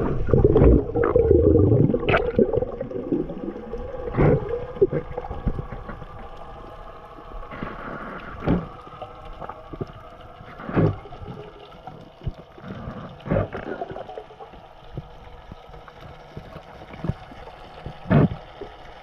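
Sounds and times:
underwater rush of water: 0.0s - 19.0s
water swishes: 0.0s - 19.0s.

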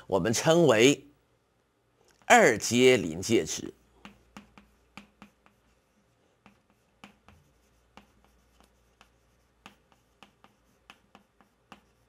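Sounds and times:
chalk writing on chalkboard: 3.6s - 12.0s.

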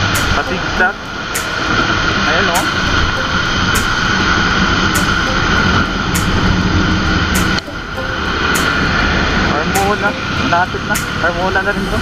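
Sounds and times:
wind rushing: 0.0s - 12.0s.

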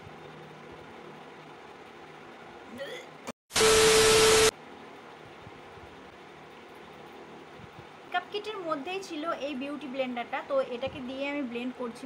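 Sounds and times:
television static: 3.5s - 4.5s.

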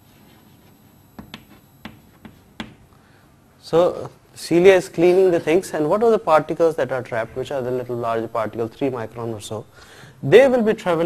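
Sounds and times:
pen tapping on writing surface: 1.2s - 2.8s.

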